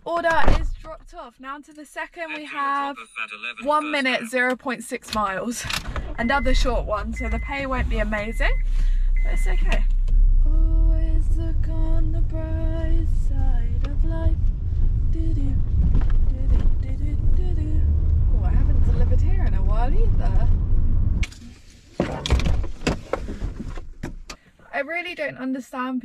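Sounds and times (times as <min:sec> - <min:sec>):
car engine and road rumble: 0:00.0 - 0:25.8.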